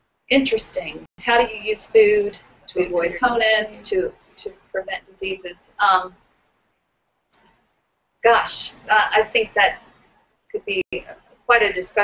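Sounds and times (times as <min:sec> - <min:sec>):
person saying um: 0:03.2 - 0:04.1.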